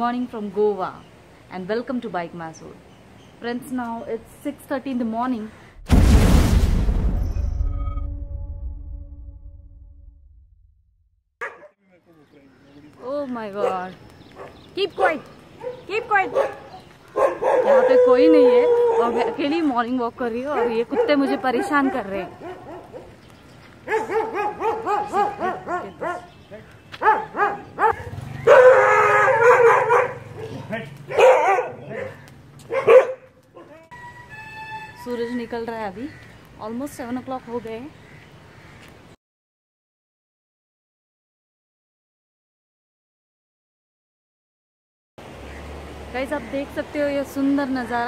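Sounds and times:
dog barking: 11.4 - 11.8, 13.6 - 19.4, 20.5 - 23.1, 23.8 - 26.3, 27.0 - 33.9
quiet dog noises: 12.9 - 19.6, 20.4 - 23.2, 23.8 - 26.4, 29.3 - 33.9.

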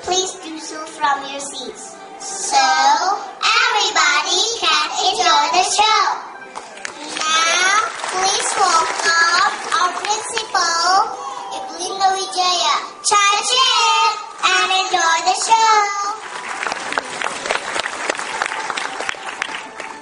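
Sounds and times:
children speaking into microphone: 0.0 - 16.3
audience applause: 6.6 - 10.5, 16.1 - 20.0.

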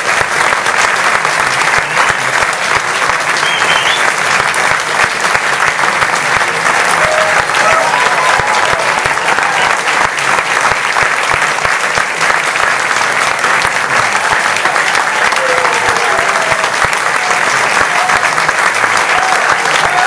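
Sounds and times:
audience clapping: 0.0 - 20.0.

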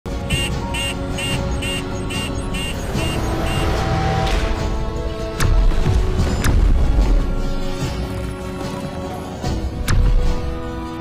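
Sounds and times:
music: 0.1 - 11.0.

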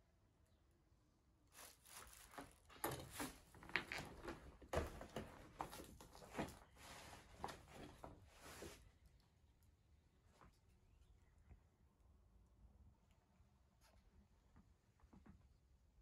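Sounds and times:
rustling handling noise: 1.5 - 8.9
footsteps on cluttered floor: 1.6 - 8.8.

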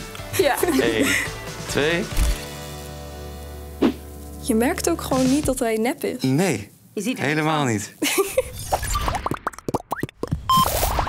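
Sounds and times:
rising cartoon bloops: 8.6 - 10.7.

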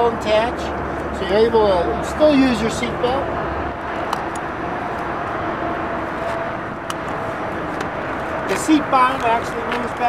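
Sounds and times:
traffic noise: 0.0 - 10.0.

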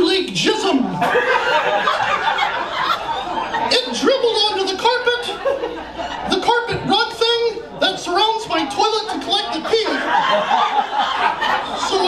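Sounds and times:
man talking and chuckling: 8.1 - 12.0.

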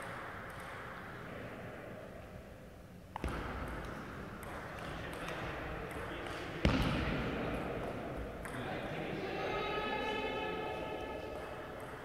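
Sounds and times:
heavy thud with echo: 6.6 - 7.7.

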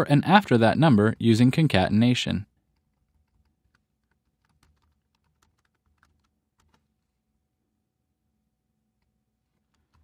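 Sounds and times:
faint keyboard typing: 2.4 - 7.2, 8.9 - 10.0.

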